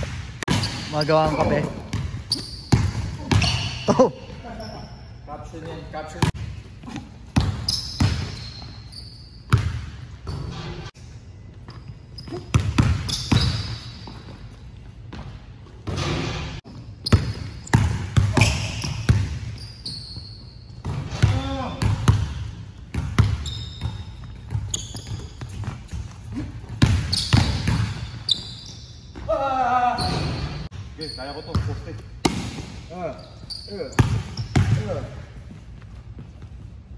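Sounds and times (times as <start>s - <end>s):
sneaker squeaks: 0.5s - 10.8s, 11.4s - 36.9s.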